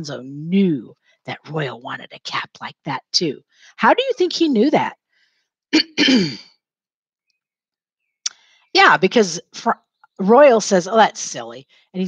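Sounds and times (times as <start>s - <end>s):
woman clearing her throat: 5.8s - 6.5s.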